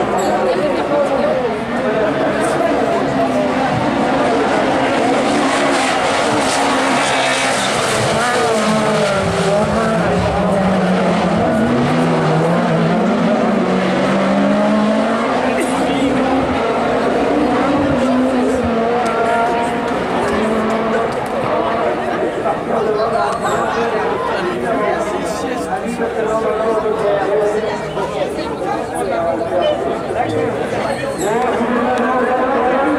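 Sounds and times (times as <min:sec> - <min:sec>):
race car engines revving: 0:00.0 - 0:32.9.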